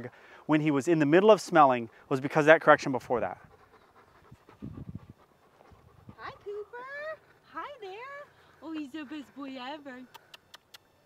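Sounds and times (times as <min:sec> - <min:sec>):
dog panting: 0:01.0 - 0:10.8.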